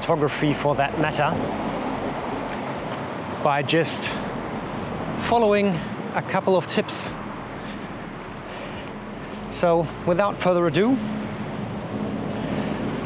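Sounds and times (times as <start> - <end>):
city street traffic: 0.0 - 13.0
heavy lorry engine hum: 0.0 - 13.0
road noise: 0.0 - 13.0.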